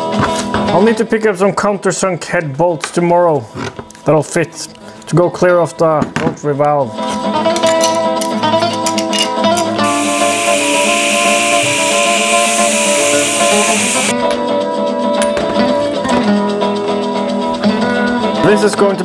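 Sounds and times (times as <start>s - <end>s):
angle grinder cutting metal: 9.8s - 14.1s.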